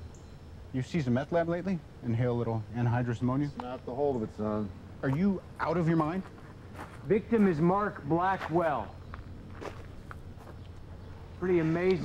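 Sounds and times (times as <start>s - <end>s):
steady low hum: 0.0s - 12.0s
faint soft footsteps: 5.0s - 7.7s, 8.3s - 12.0s.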